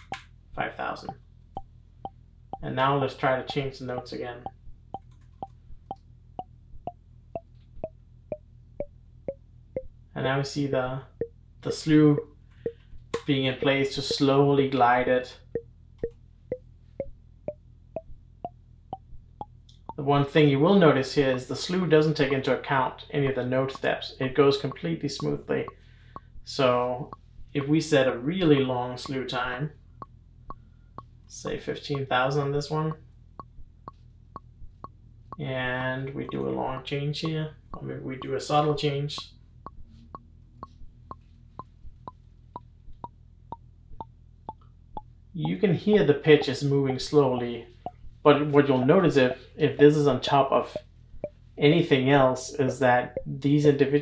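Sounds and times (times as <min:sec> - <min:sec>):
gliding pitched percussion plonks: 0:02.6 - 0:04.6, 0:11.7 - 0:14.7, 0:52.6 - 0:53.8
pitched synth percussion hits: 0:12.7 - 0:14.4.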